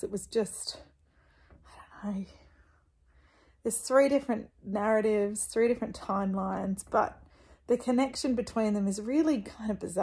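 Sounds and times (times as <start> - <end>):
woman whispering: 1.6 - 2.6.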